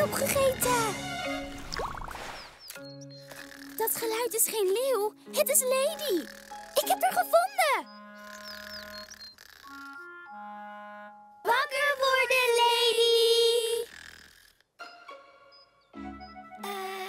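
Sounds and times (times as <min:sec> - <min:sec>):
light cartoon background music: 0:00.0 - 0:17.0.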